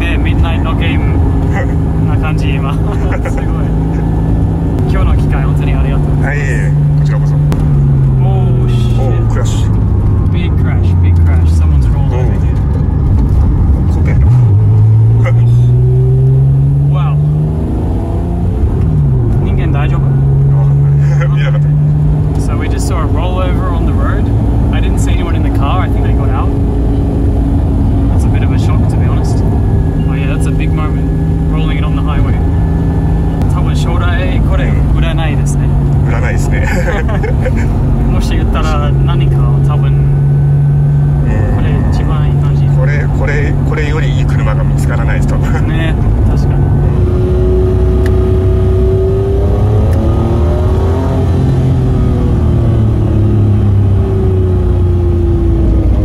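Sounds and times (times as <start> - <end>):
car engine accelerating: 0.0 - 56.0
road noise: 0.0 - 56.0.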